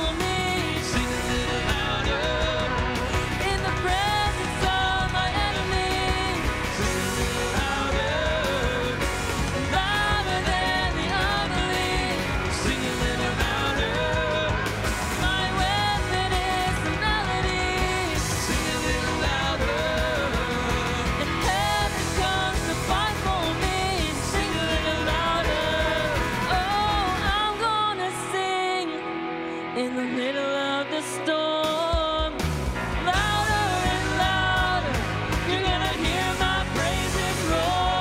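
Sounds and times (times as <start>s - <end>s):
voices singing together: 0.0s - 27.6s, 33.1s - 38.0s
bass: 0.0s - 38.0s
drums: 0.0s - 38.0s
electric guitar: 0.0s - 38.0s
keyboard: 0.0s - 38.0s.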